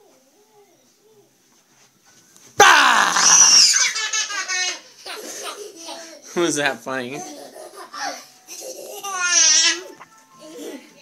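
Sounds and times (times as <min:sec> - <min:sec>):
person screaming: 0:02.6 - 0:03.9
children laughing: 0:02.6 - 0:06.4, 0:07.1 - 0:11.0.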